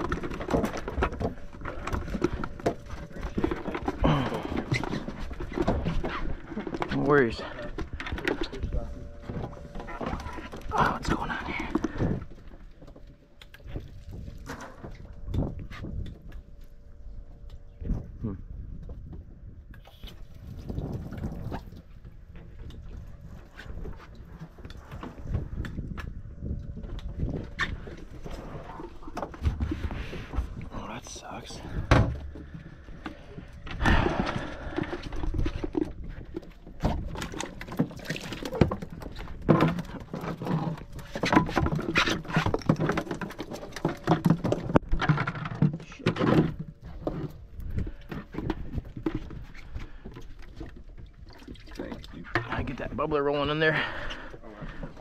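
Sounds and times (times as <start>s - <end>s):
knocks and clatter of gear: 0.0s - 19.5s, 20.4s - 55.0s.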